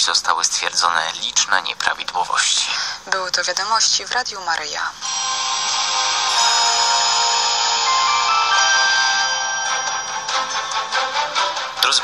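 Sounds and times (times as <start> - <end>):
electronic music jingle: 5.1 - 11.8.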